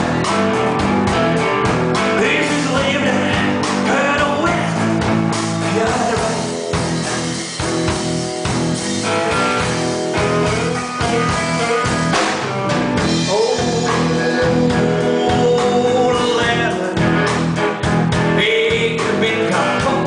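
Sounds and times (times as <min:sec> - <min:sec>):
drum kit: 0:00.0 - 0:20.0
electric guitar: 0:00.0 - 0:20.0
man singing into microphone: 0:02.0 - 0:05.0, 0:05.6 - 0:06.6, 0:13.1 - 0:17.4, 0:18.2 - 0:20.0.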